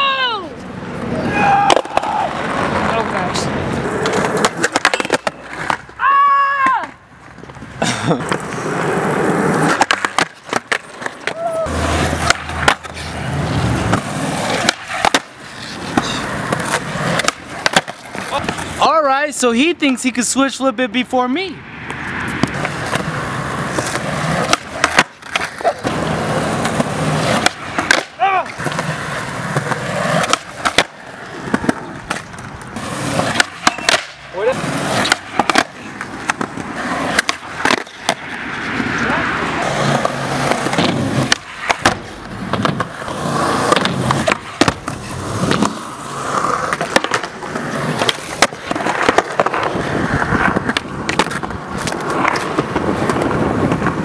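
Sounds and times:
skateboard wheels rolling on concrete: 0.0s - 54.0s
skateboard clacks: 1.0s - 18.8s, 21.9s - 39.0s, 39.6s - 54.0s.

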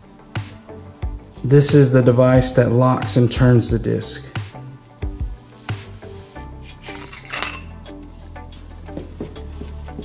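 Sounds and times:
quiet background music: 0.0s - 10.0s
metallic clink: 6.8s - 7.8s.

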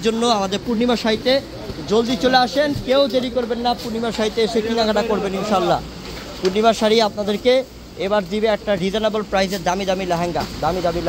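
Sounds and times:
man talking fast: 0.0s - 11.0s.

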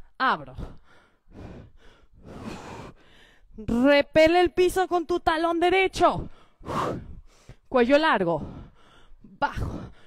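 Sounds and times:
woman breathing hard: 0.6s - 3.6s, 6.2s - 7.7s, 8.4s - 10.0s.

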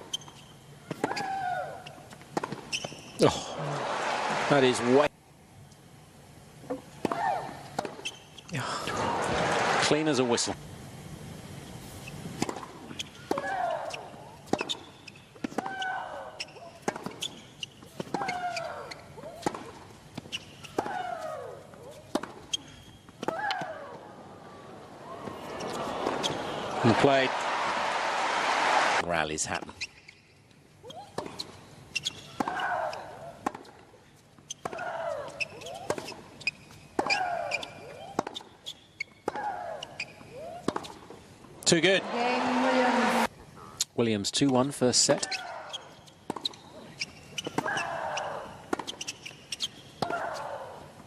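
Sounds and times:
tennis ball bouncing: 14.5s - 15.9s, 16.5s - 21.1s, 21.8s - 22.6s, 31.2s - 32.8s, 33.4s - 33.8s, 34.5s - 38.5s, 39.2s - 41.1s, 46.2s - 46.6s, 48.7s - 50.4s
racket striking tennis ball: 16.8s - 17.3s, 22.0s - 22.6s.

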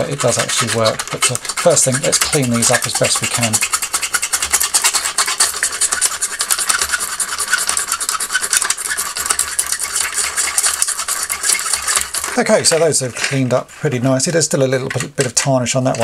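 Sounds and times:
pen scrubbing on metal: 0.0s - 16.0s.

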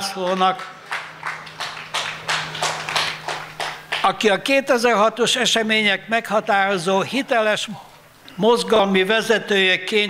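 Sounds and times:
crowd clapping in unison: 0.0s - 4.2s.

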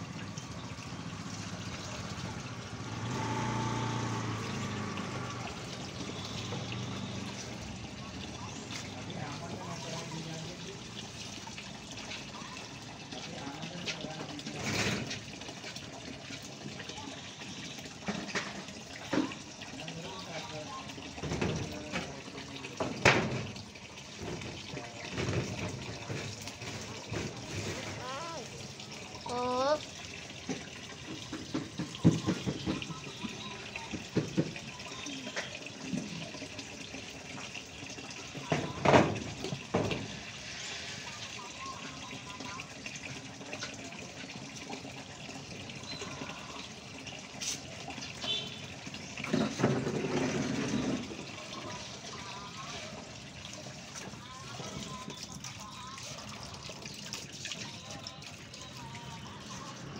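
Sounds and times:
running water: 0.0s - 59.9s
scattered knocks: 31.1s - 33.2s.

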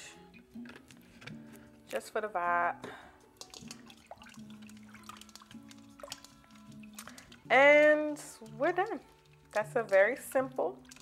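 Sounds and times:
soft background music: 0.0s - 11.0s
water dripping and splashing: 3.3s - 11.0s.

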